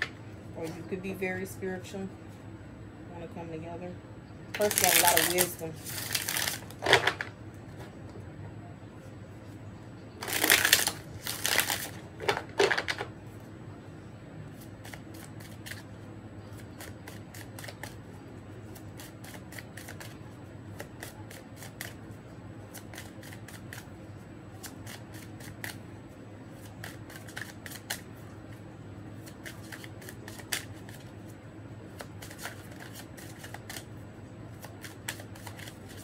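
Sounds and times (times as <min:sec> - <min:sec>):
cards being shuffled: 0:04.6 - 0:07.3, 0:10.2 - 0:13.1, 0:14.5 - 0:15.9, 0:16.5 - 0:18.1, 0:18.7 - 0:22.0, 0:22.7 - 0:23.9, 0:24.6 - 0:25.8, 0:26.6 - 0:28.6, 0:29.2 - 0:31.1, 0:31.9 - 0:33.9, 0:34.5 - 0:36.0.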